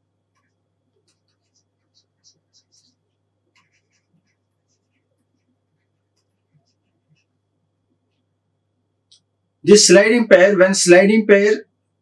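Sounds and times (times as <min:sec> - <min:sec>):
stylus scratching on a tablet: 0:00.0 - 0:08.4
low electrical hum: 0:00.0 - 0:12.0.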